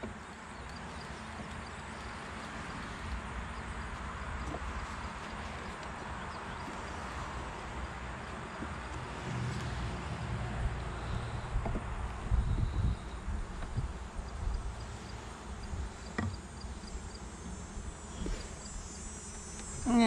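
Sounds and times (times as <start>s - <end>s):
honeybees humming: 0.0s - 20.0s
low rumble on microphone: 2.5s - 18.9s.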